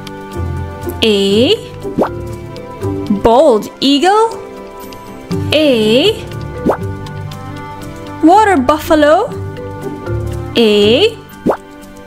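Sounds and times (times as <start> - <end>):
background music held notes: 0.0 - 12.0.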